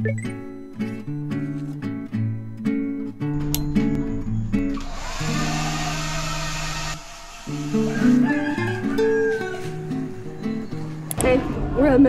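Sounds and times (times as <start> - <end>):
acoustic guitar music: 0.0 - 6.9, 7.5 - 12.0
hair dryer blowing: 4.8 - 8.3.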